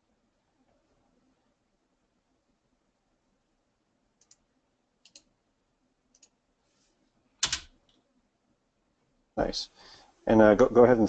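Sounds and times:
computer mouse clicks: 4.2 - 5.3, 6.1 - 6.4.

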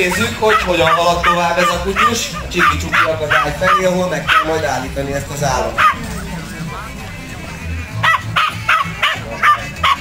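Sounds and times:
puppy barking: 0.1 - 4.6, 5.8 - 6.1, 8.0 - 10.0.

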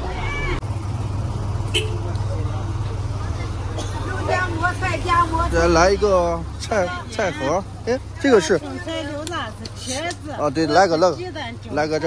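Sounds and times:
bus engine rumble: 0.0 - 12.0
people talking: 2.0 - 12.0.

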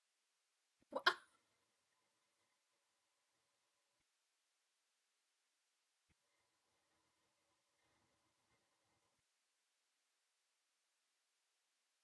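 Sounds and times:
person hiccup-like vocal catch: 0.9 - 1.3.

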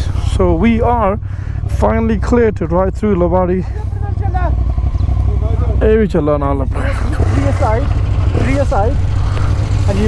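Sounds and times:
motorcycle engine idling: 0.0 - 10.0.

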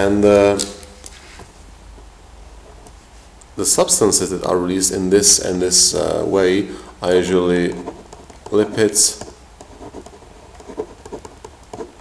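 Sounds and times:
pen scratching on paper: 7.7 - 12.0.

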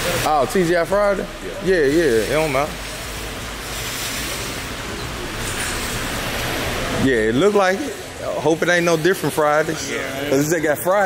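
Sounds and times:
rain falling on pavement: 0.0 - 11.0.

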